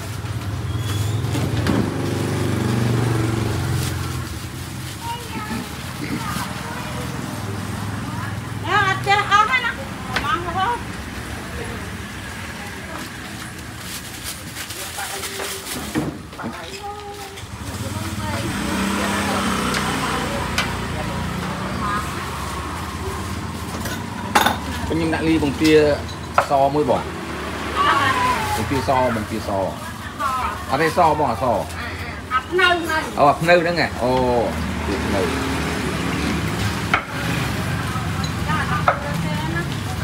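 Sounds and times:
vehicle engine running: 0.0 - 15.8, 16.9 - 40.0
street noise: 0.0 - 40.0.

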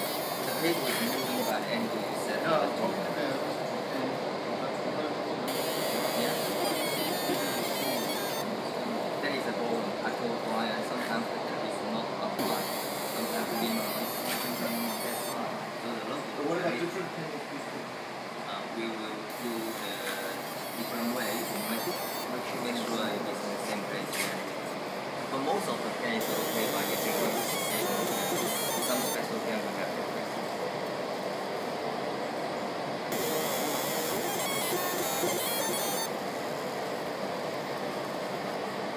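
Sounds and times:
laser engraver hissing whine: 0.0 - 3.4, 5.4 - 11.1, 11.7 - 16.1, 19.1 - 24.0, 25.4 - 30.5, 33.1 - 37.1
machinery running: 5.4 - 8.6, 12.3 - 15.5, 33.1 - 36.6.

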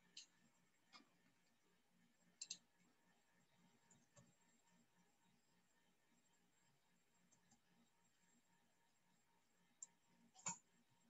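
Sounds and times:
faint sharp clicks: 2.4 - 2.6.

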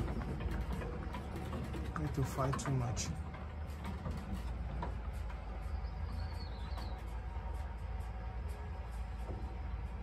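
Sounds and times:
goat hooves on wooden floor: 0.0 - 10.0
steady low rumble: 0.0 - 10.0.

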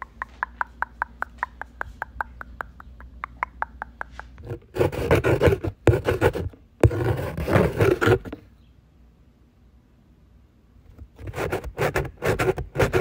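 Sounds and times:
loud rough scratching: 4.4 - 8.4, 11.2 - 13.0.

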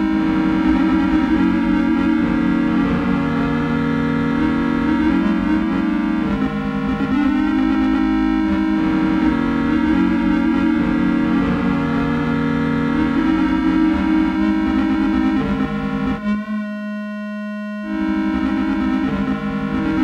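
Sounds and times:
electronic computer music: 0.0 - 20.0.

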